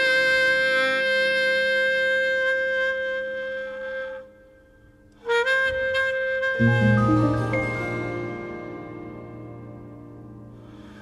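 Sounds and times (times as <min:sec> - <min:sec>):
held wind instrument note: 0:00.0 - 0:11.0.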